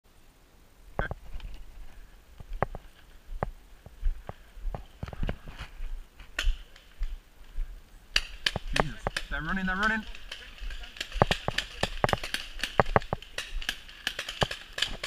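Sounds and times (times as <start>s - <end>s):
paintball markers firing: 8.1s - 15.0s.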